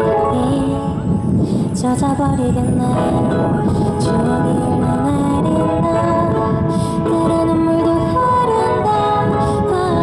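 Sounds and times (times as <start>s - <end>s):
woman singing into microphone: 0.0s - 10.0s.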